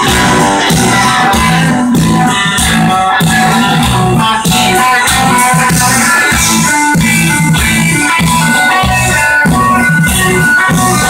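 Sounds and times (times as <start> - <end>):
bass guitar: 0.0 - 11.0
drums on a steady beat: 0.0 - 11.0
electric guitars: 0.0 - 11.0.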